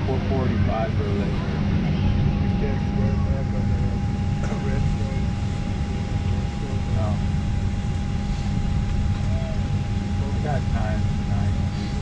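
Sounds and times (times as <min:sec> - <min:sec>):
airliner cabin rumble: 0:00.0 - 0:12.0
passengers chattering: 0:00.0 - 0:12.0
thin steady whine: 0:00.0 - 0:12.0.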